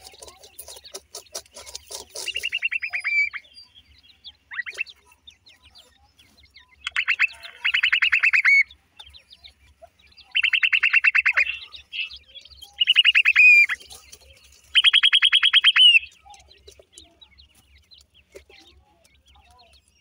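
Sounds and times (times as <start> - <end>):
bird chittering trills: 0.0 - 20.0.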